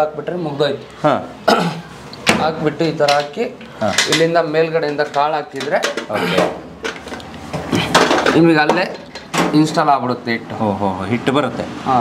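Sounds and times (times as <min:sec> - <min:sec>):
men talking: 0:00.0 - 0:06.7, 0:07.7 - 0:12.0.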